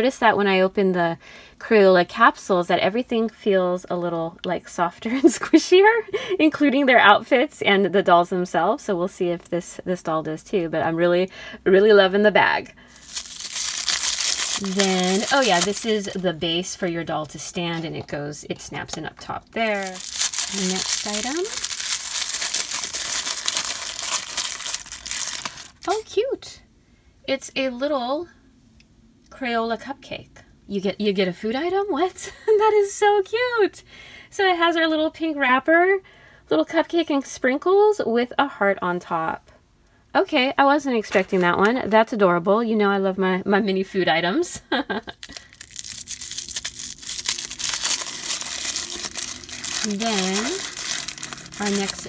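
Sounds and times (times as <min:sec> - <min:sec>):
wrapper crinkling: 0:12.9 - 0:16.4, 0:19.6 - 0:26.0, 0:45.1 - 0:52.0.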